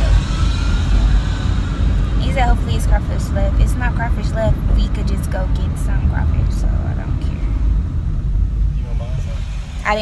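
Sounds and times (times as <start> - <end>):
car cabin rumble: 0.0 - 10.0
woman's voice: 2.2 - 7.5.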